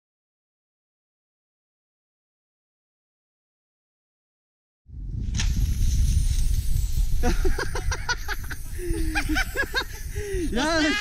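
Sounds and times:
wind buffeting microphone: 0:04.9 - 0:11.0.

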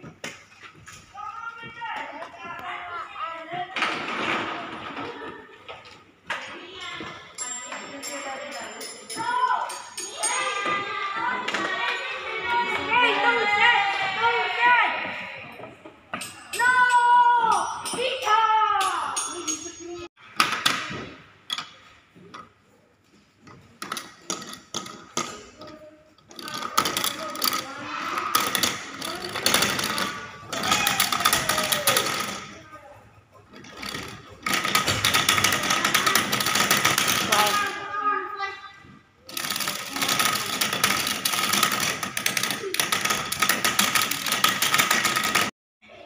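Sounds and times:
voices in room: 0:00.0 - 0:46.0
plastic gears clicking and rattling: 0:23.4 - 0:32.6, 0:33.5 - 0:37.8, 0:39.2 - 0:45.5.

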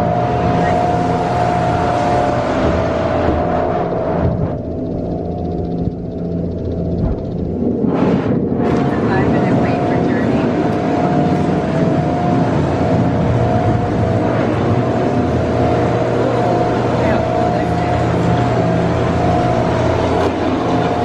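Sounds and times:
constant hum: 0:00.0 - 0:21.0
indoor boat ride din: 0:00.0 - 0:21.0
people talking: 0:00.5 - 0:01.0, 0:08.7 - 0:11.6, 0:16.4 - 0:19.5.

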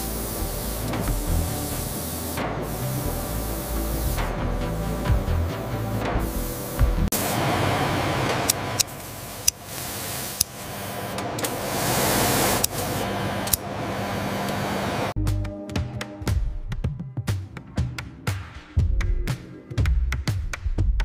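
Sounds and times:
background music: 0:00.0 - 0:07.2, 0:15.2 - 0:21.0
laser cutter hissing and crackling: 0:00.0 - 0:15.2.

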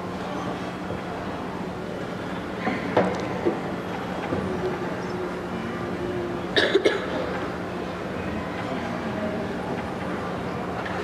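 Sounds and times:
congregation murmur: 0:00.0 - 0:11.0
low steady hum: 0:00.0 - 0:11.0
people coughing: 0:06.5 - 0:07.4.

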